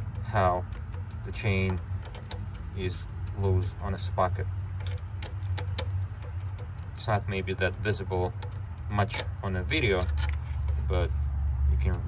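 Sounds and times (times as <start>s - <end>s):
light metallic chain clicks: 0.0s - 11.0s.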